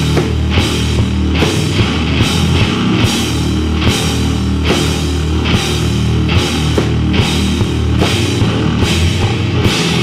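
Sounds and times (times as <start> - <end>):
drum kit playing: 0.0 - 10.0
heavy distorted guitars: 0.0 - 10.0.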